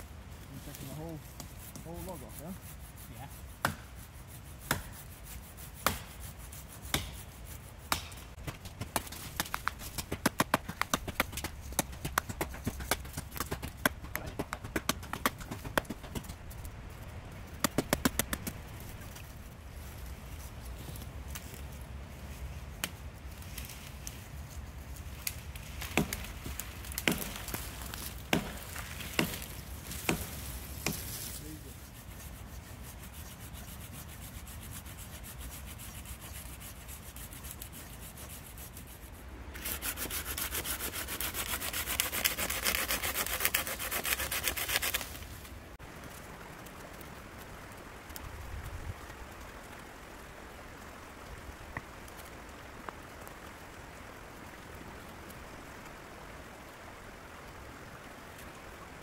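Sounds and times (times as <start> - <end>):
hand saw cutting a branch: 0.6 - 16.4, 17.6 - 18.6, 25.2 - 45.4
dead wood cracking and snapping: 25.2 - 31.2, 41.2 - 45.3.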